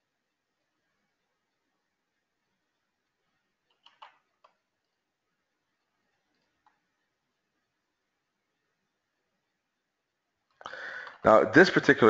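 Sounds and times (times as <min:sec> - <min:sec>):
faint clicks: 0:02.7 - 0:05.0, 0:05.8 - 0:06.9.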